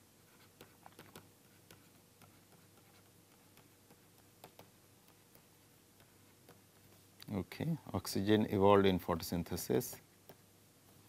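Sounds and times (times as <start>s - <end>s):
stylus ticking on tablet: 3.3s - 6.6s.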